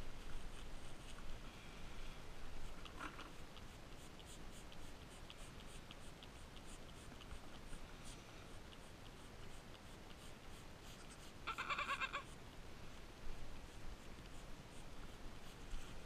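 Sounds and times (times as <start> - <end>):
goat kid bleating: 11.0 - 12.4.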